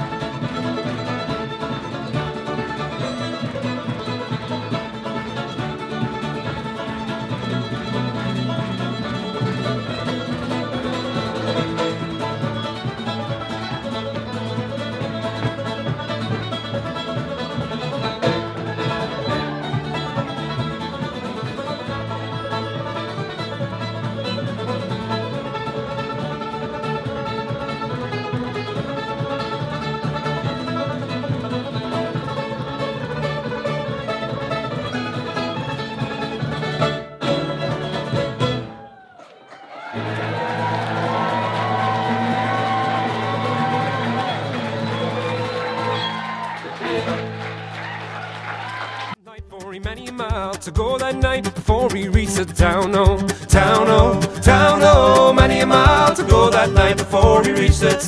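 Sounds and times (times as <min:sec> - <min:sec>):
fiddle playing: 0:00.0 - 0:38.8, 0:40.0 - 0:58.0
acoustic guitar: 0:00.0 - 0:39.0, 0:40.0 - 0:48.0, 0:49.2 - 0:58.0.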